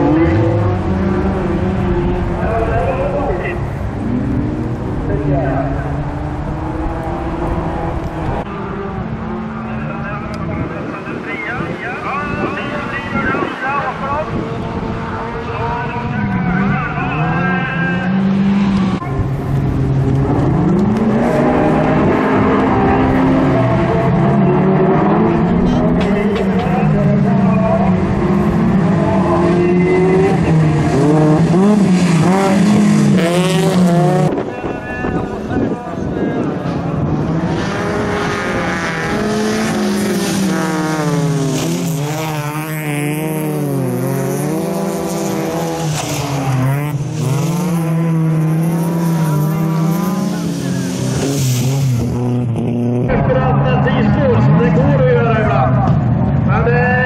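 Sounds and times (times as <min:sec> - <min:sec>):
cars racing through a bend: 0:00.0 - 0:57.0
race car engines revving: 0:00.0 - 0:57.0.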